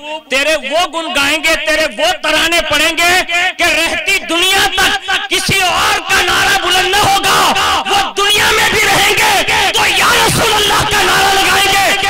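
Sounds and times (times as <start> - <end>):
man preaching through loudspeakers: 0.0 - 12.0.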